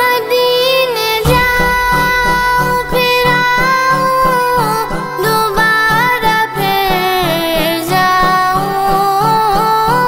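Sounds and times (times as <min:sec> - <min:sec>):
low steady beat: 0:01.2 - 0:05.9.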